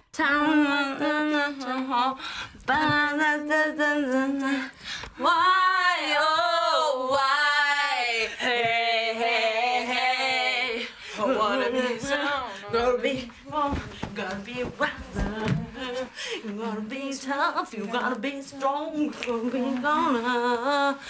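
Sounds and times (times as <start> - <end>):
women singing unaccompanied: 0.0 - 21.0.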